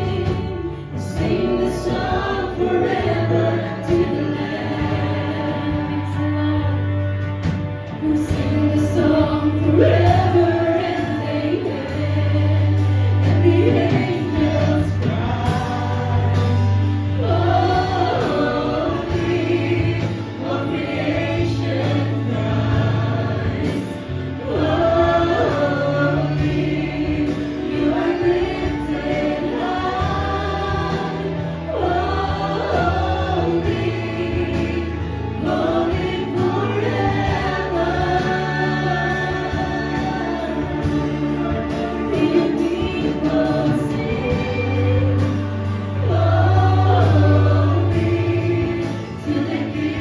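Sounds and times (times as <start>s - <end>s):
sustained bass notes: 0.0s - 50.0s
vocalists singing together: 0.0s - 50.0s.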